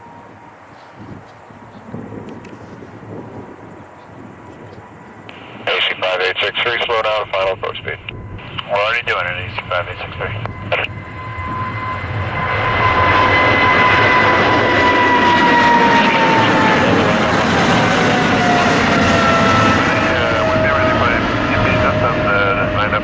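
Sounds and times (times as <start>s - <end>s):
jet engine whine: 0.0s - 23.0s
jet engines roaring at takeoff: 0.0s - 23.0s.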